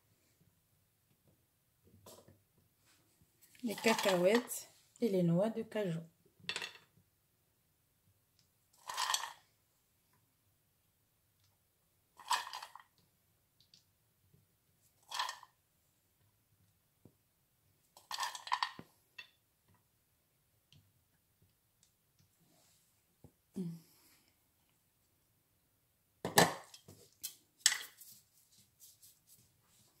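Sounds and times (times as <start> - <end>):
nuts rattling onto a plate: 8.8 - 9.4, 18.0 - 19.3.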